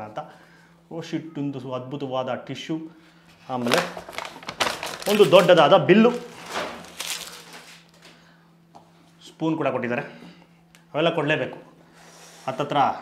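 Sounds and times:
paper packaging rustling: 3.6 - 8.1
man speaking: 5.0 - 6.3.

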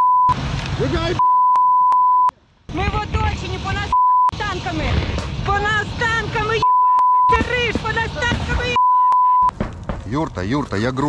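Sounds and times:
censor bleep: 0.0 - 0.3, 1.2 - 2.3, 3.9 - 4.4, 6.6 - 7.4, 8.7 - 9.5.

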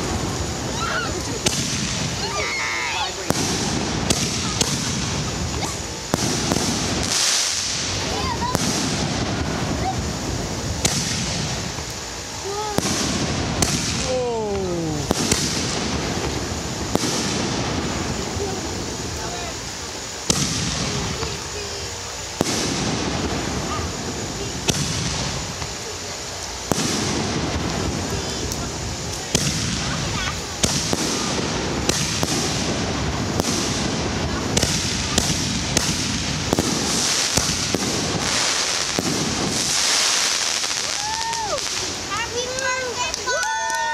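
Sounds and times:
firework shells launching and bursting: 0.0 - 25.9, 26.5 - 43.9.

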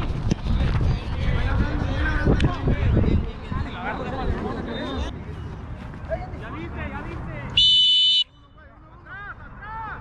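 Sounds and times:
referee's whistle blast: 7.6 - 8.4.

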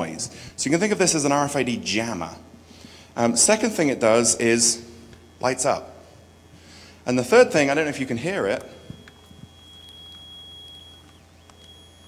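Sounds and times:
high-pitched electronic beep: 7.1 - 12.0.

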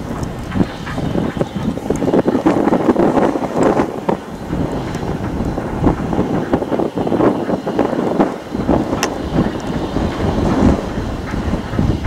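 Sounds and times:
steam locomotive exhaust beating: 0.0 - 12.0
wind buffeting microphone: 0.0 - 12.0.

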